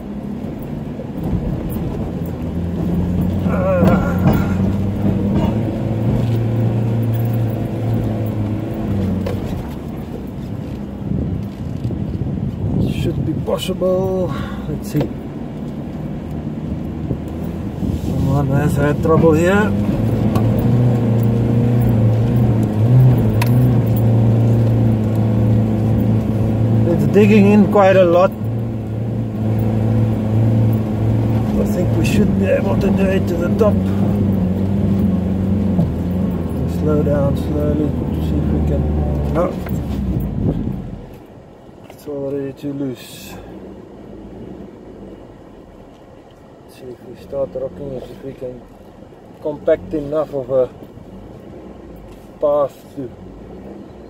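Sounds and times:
truck engine pulling under load: 0.0s - 54.0s.

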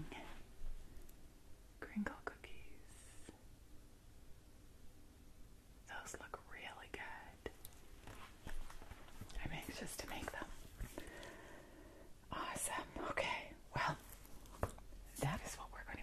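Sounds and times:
woman whispering softly: 0.0s - 0.4s, 1.8s - 3.4s, 5.9s - 7.7s, 9.2s - 10.6s, 12.3s - 14.3s, 15.1s - 16.0s.

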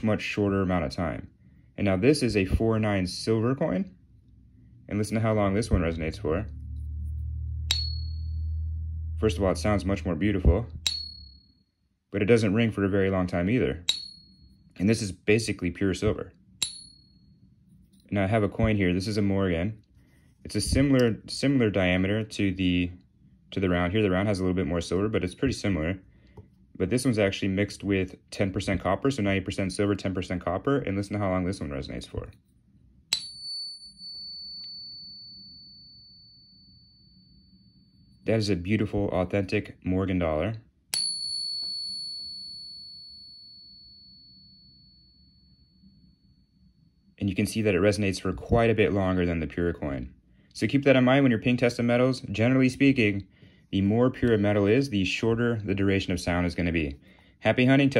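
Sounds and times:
steady low hum: 0.0s - 57.9s
silver coin ping: 7.7s - 8.6s, 10.8s - 11.5s, 13.9s - 14.6s, 16.6s - 17.3s, 33.1s - 37.6s, 40.9s - 45.5s
coin ringing high tone: 7.7s - 8.8s, 10.9s - 11.6s
wooden dowel tapping coin: 10.8s - 11.4s, 13.9s - 14.3s, 16.6s - 17.1s.

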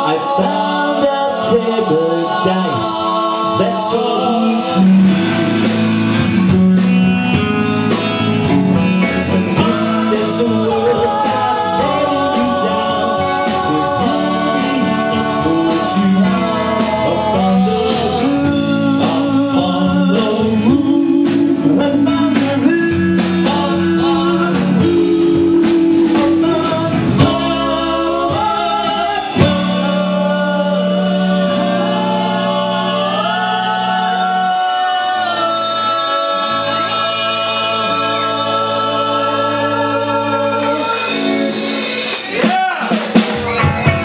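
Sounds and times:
men singing held notes: 0.0s - 5.9s, 9.3s - 41.8s
drums: 0.0s - 44.0s
electric guitars: 0.0s - 44.0s.

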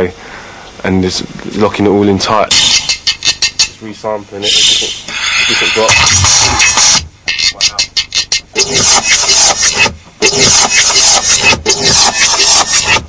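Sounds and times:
stuttering resampled sound: 2.5s - 3.8s, 4.4s - 13.0s.

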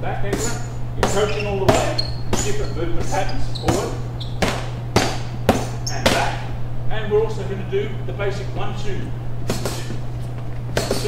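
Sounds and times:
steady low hum: 0.0s - 11.0s
boxing gloves hitting focus pads: 0.3s - 6.4s, 9.5s - 10.0s, 10.7s - 11.0s.

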